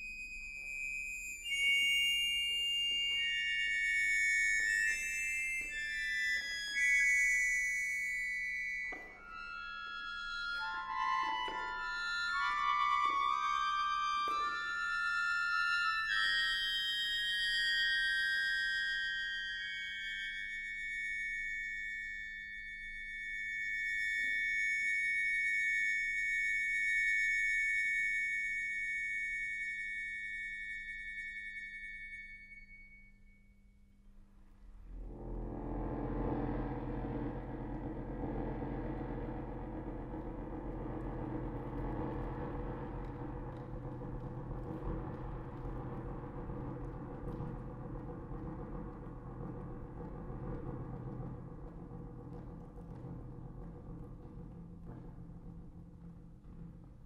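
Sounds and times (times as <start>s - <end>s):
accordion playing dissonant chords: 9.7s - 17.2s.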